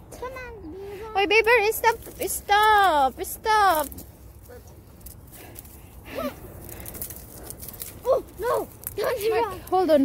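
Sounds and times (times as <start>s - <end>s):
faint rustles and clicks: 0.1s - 10.0s.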